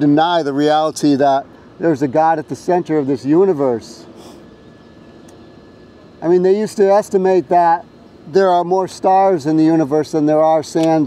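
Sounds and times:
distant engine hum: 0:00.0 - 0:11.0.

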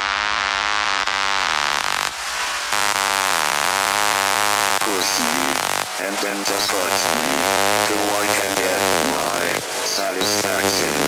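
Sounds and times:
distorted synth lead: 0:00.0 - 0:11.0.

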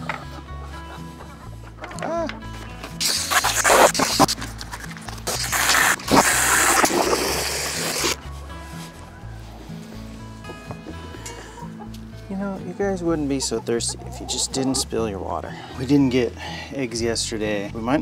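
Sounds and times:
water running into plastic bucket: 0:05.2 - 0:08.2
background music with steady beat: 0:08.1 - 0:18.0.

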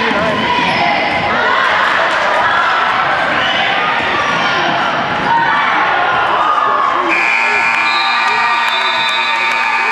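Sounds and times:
crowd voices and shouts: 0:00.0 - 0:09.9
scoreboard buzzer: 0:07.1 - 0:09.9.

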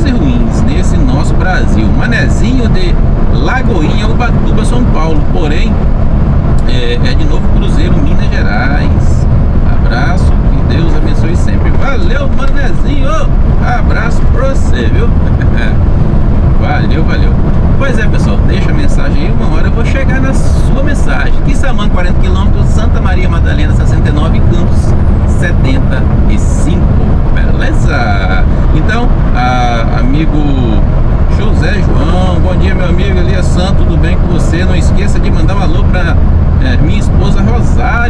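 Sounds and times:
indistinct voices: 0:00.0 - 0:05.9, 0:06.5 - 0:38.0
truck engine and tyres droning: 0:00.0 - 0:38.0.

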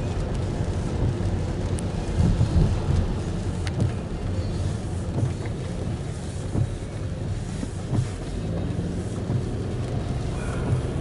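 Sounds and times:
engine and tyres rumbling: 0:00.0 - 0:11.0.

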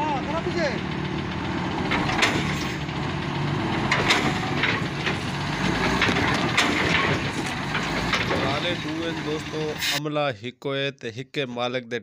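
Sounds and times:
diesel truck engine idling: 0:00.0 - 0:10.0.

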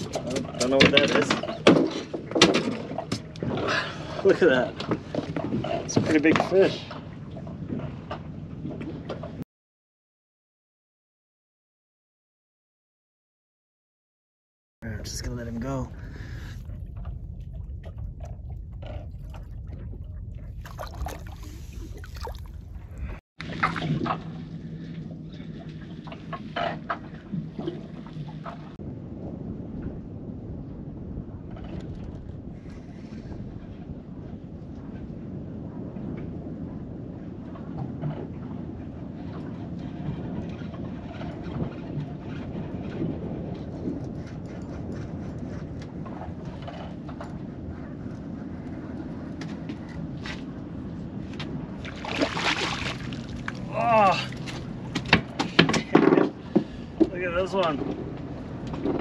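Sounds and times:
wind rumble on microphone: 0:00.0 - 0:09.4, 0:14.8 - 0:59.0.

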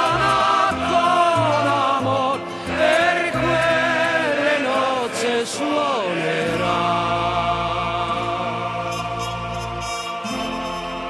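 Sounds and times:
choir singing: 0:00.0 - 0:11.0.

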